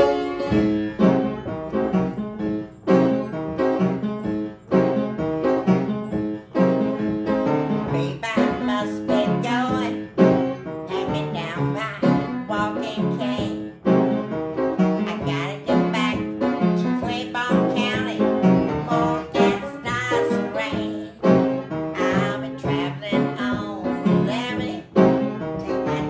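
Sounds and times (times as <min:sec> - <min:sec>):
piano playing blues: 0:00.0 - 0:26.0
woman singing: 0:07.9 - 0:10.1, 0:10.9 - 0:13.7, 0:15.0 - 0:26.0.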